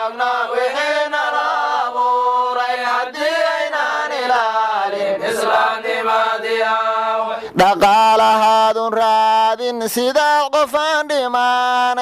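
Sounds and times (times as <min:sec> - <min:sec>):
person chanting: 0:00.0 - 0:09.9.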